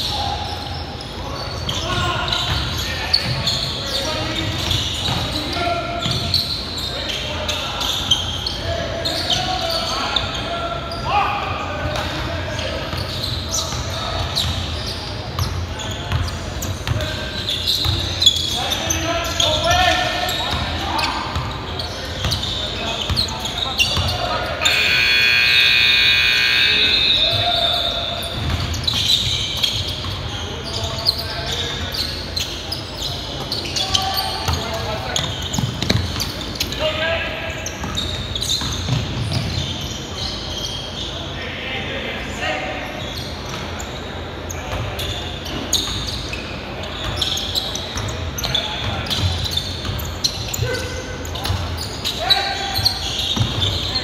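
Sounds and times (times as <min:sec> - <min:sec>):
players' voices: 0:00.0 - 0:54.0
loud buzzer tone: 0:24.6 - 0:27.4.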